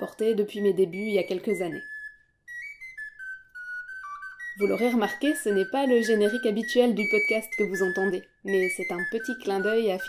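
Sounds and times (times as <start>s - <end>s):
flageolet playing high notes: 0.6s - 10.0s.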